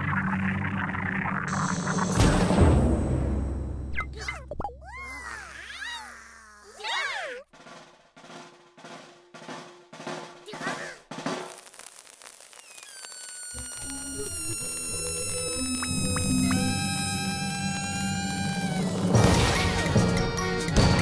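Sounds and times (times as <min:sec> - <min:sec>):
music with held high tones: 0:01.5 - 0:04.0, 0:13.0 - 0:21.0
squeaky cartoon character voices: 0:04.0 - 0:07.5, 0:10.5 - 0:11.0
evenly spaced drum taps: 0:07.6 - 0:11.6.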